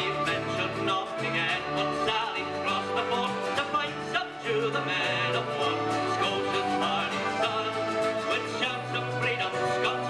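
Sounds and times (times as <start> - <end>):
acoustic guitar: 0.0 - 10.0
man singing: 0.0 - 10.0.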